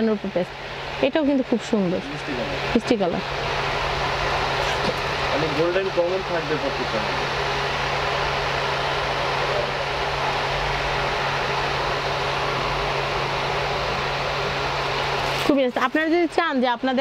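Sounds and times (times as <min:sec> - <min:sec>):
steady rushing noise: 0:00.0 - 0:16.4
low even hum: 0:00.0 - 0:17.0.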